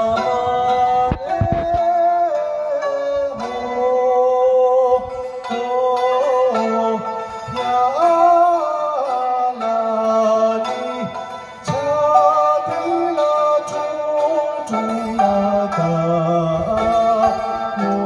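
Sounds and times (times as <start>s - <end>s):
person singing ornamented melody: 0.0s - 18.0s
plucked lute: 0.0s - 18.0s.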